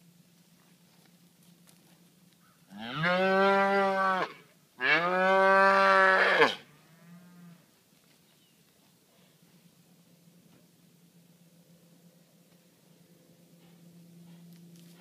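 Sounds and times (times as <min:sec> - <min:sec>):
cow mooing: 0:02.8 - 0:07.6.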